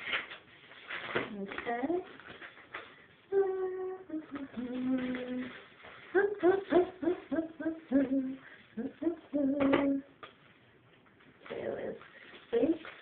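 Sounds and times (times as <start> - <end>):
plastic package rustling: 0.0 - 3.0, 4.4 - 6.1
woman humming a tune: 3.3 - 10.1.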